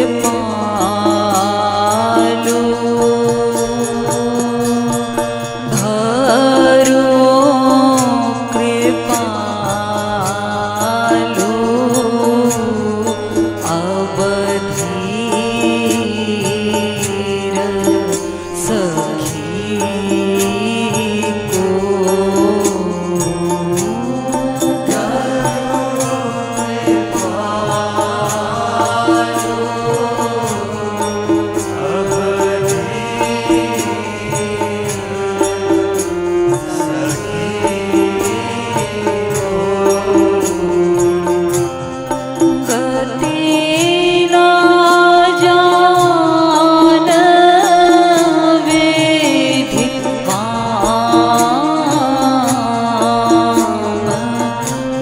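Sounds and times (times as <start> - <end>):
hand cymbals: 0.0 - 55.0
harmonium drone: 0.0 - 55.0
woman singing devotional song: 0.0 - 55.0.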